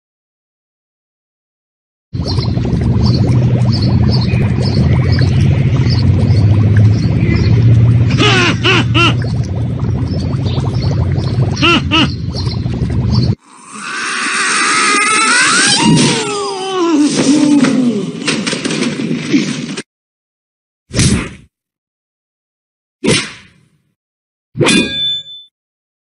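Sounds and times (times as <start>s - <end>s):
low hum: 2.2s - 13.4s
wavering gliding cry: 13.6s - 16.8s.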